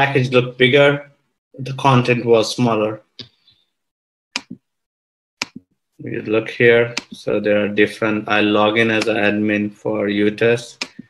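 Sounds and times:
computer mouse clicks: 0:05.4 - 0:05.7.

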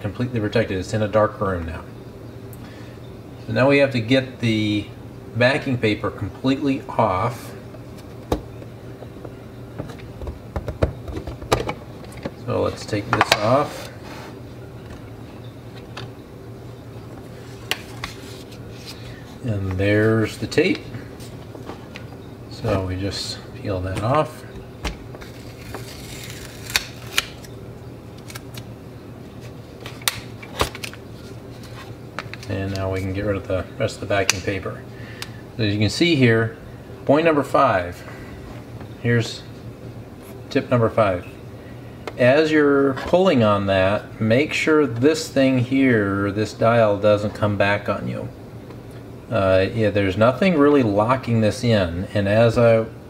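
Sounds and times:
low steady hum: 0:00.0 - 0:53.0
tape peeling off film: 0:24.8 - 0:28.7, 0:29.3 - 0:33.1.

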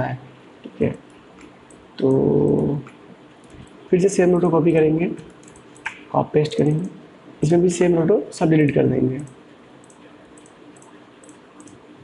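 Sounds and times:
man speaking: 0:00.0 - 0:01.0, 0:02.0 - 0:02.9, 0:03.9 - 0:05.2, 0:06.1 - 0:09.3.

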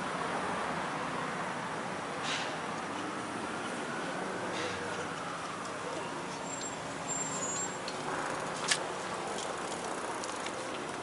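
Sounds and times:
distant road traffic hum: 0:00.0 - 0:11.0.

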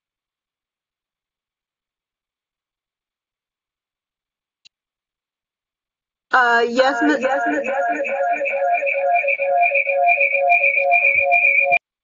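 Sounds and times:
electronic warbling tone: 0:06.4 - 0:11.8.

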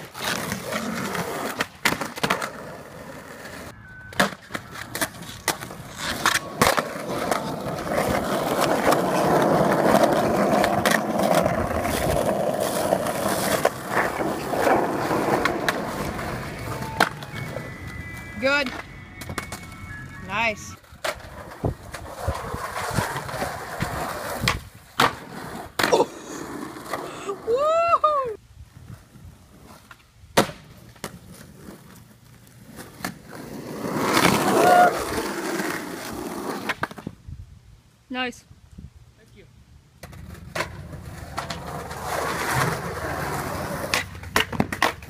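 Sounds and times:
skateboard clacking on ground: 0:00.0 - 0:19.8, 0:40.0 - 0:45.0
skateboard wheels rolling on pavement: 0:00.0 - 0:37.9, 0:39.6 - 0:45.0.

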